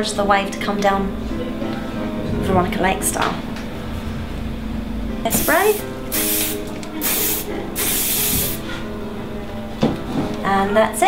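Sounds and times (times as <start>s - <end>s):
hairspray can hissing: 5.3s - 8.7s.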